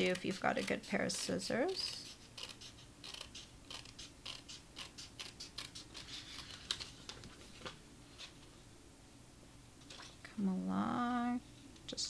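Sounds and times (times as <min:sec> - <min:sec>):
scissors snipping paper: 0:00.0 - 0:06.9.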